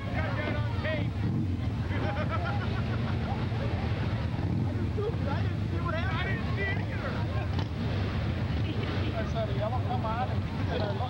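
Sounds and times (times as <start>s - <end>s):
crowd chattering: 0.0s - 11.0s
vehicle engine humming: 0.0s - 11.0s.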